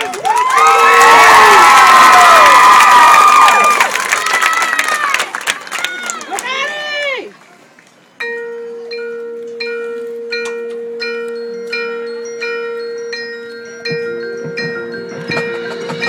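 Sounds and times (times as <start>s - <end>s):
crowd cheering and whooping: 0.0s - 7.0s
bell-like mallet percussion notes: 8.2s - 16.0s.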